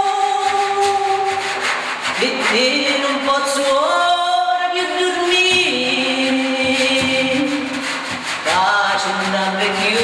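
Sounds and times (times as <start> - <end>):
hand rubbing frame drum skin: 0.0 - 10.0.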